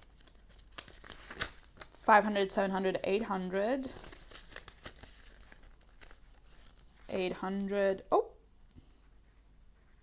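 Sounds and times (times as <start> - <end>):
banknotes rustling in plastic: 0.0 - 2.1, 2.9 - 7.1.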